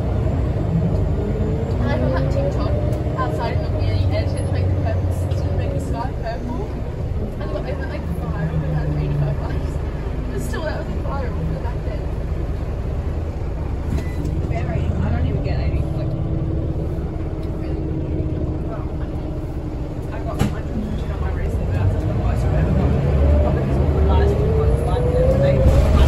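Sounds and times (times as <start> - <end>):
bus engine rumble: 0.0 - 26.0.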